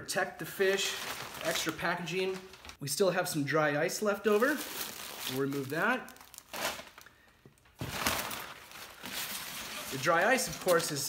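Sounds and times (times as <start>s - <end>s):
packing paper crumpling: 0.6s - 2.8s, 4.3s - 11.0s.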